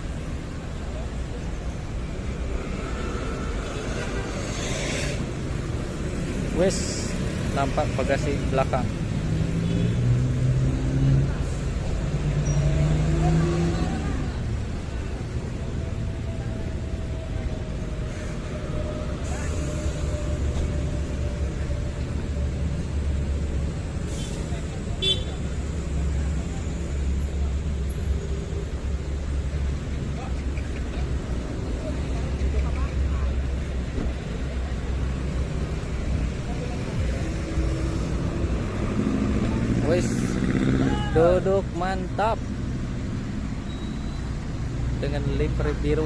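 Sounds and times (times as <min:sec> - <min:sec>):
diesel bus engine rumbling: 0:00.0 - 0:46.0
motorcycles: 0:00.0 - 0:46.0
passing street traffic: 0:00.0 - 0:46.0.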